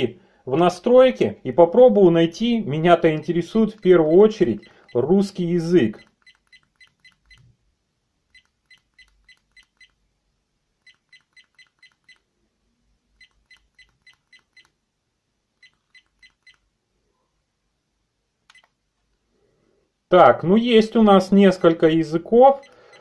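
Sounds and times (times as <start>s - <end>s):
short electronic beeps: 13.2s - 14.7s.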